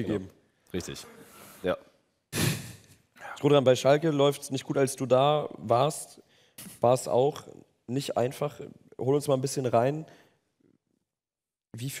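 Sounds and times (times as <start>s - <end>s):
loud breath into microphone: 2.3s - 3.0s.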